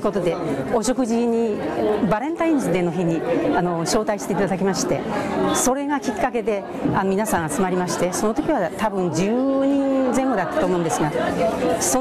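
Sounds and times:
crowd chatter in a large hall: 0:00.0 - 0:12.0
woman speaking: 0:00.0 - 0:12.0.

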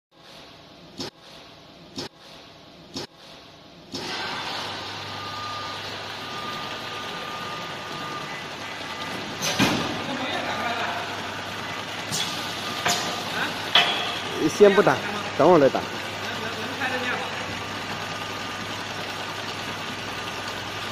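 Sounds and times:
packing machine humming: 0:01.9 - 0:20.9
faint machine whine: 0:02.2 - 0:20.9
sharp machine clunks: 0:09.2 - 0:10.0, 0:12.0 - 0:14.5.

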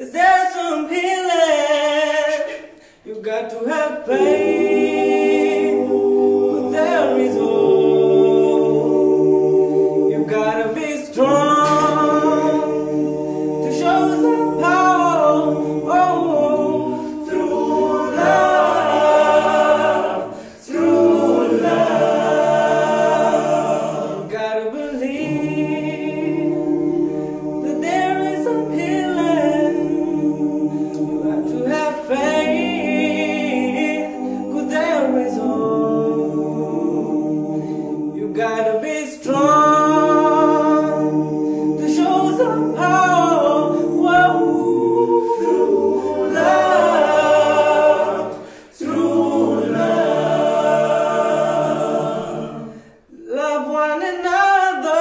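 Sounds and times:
male vocal group singing a cappella: 0:00.0 - 0:55.0.

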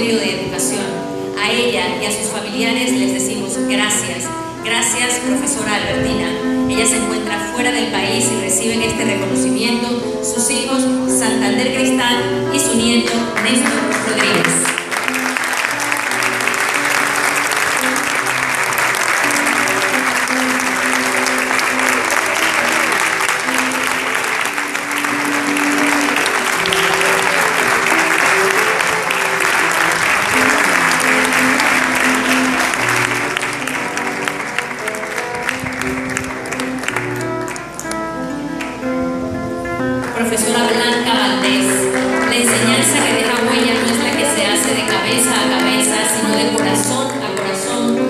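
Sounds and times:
music with long held notes: 0:00.0 - 0:48.0
audience clapping: 0:13.0 - 0:38.9, 0:40.0 - 0:48.0.

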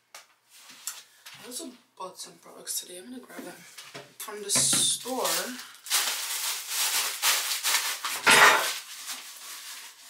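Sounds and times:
plastic bag crinkling: 0:05.0 - 0:10.0.

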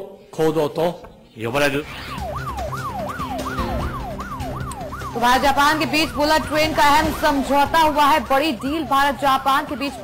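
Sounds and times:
siren-like sweeping tone: 0:01.8 - 0:10.0.

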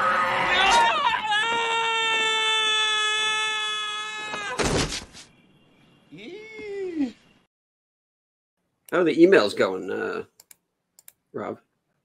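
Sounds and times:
person screaming: 0:00.2 - 0:04.7.

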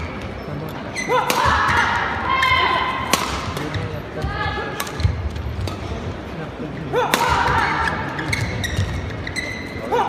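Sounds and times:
court shoes squeaking: 0:00.0 - 0:02.0, 0:03.2 - 0:10.0
racket striking shuttlecock: 0:03.1 - 0:03.8.

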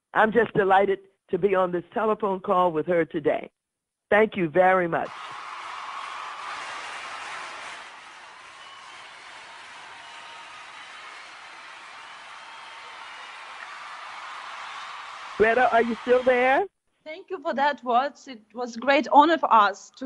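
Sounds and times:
crowd cheering and clapping: 0:05.1 - 0:16.7.

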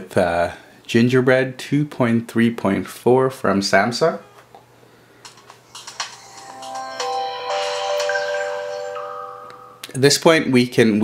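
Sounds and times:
phone startup chime: 0:05.8 - 0:09.8.

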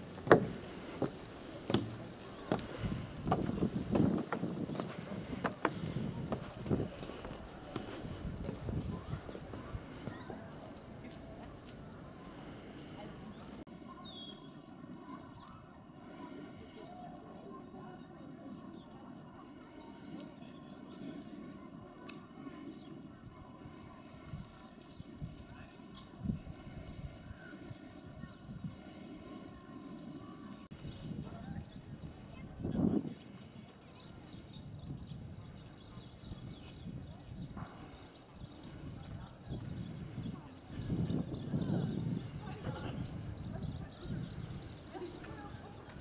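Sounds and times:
distant voices: 0:00.0 - 0:46.0.

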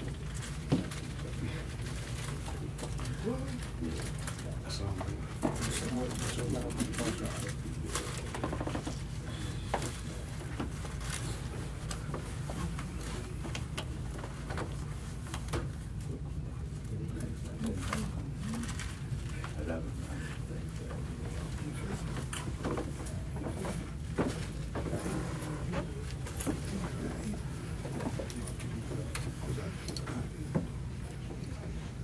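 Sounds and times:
low room hum: 0:00.0 - 0:32.0
people talking quietly: 0:00.0 - 0:32.0
men's voices murmuring: 0:16.2 - 0:32.0.

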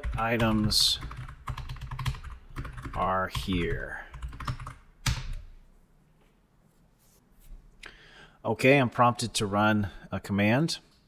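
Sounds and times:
computer keyboard typing: 0:00.0 - 0:05.4.

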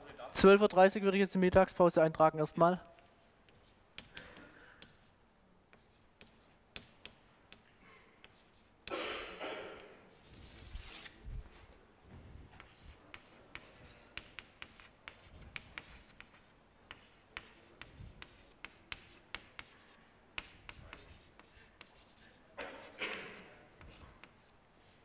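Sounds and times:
chalk writing on blackboard: 0:02.9 - 0:08.8, 0:10.1 - 0:11.2, 0:12.5 - 0:24.6.

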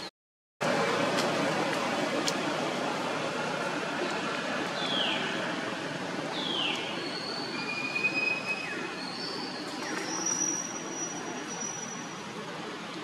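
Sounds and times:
high-pitched whistling calls: 0:06.4 - 0:12.0.

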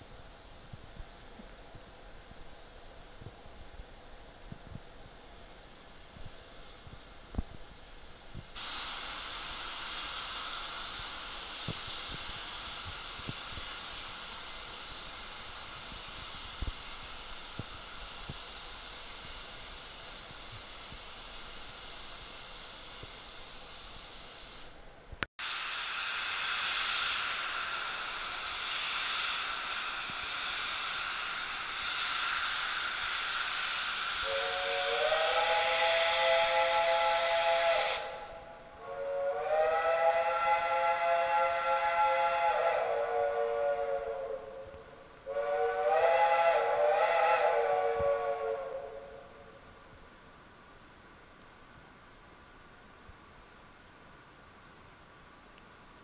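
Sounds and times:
locomotive steam hissing: 0:00.0 - 0:56.0
steam locomotive chime whistle: 0:25.4 - 0:50.0.

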